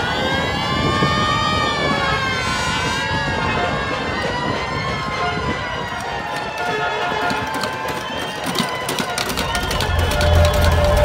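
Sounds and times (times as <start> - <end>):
emergency siren wailing: 0.0 - 11.0.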